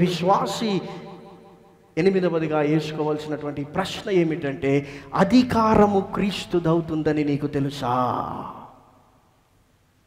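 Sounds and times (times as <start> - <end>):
man speaking: 0.0 - 1.1, 2.0 - 8.7.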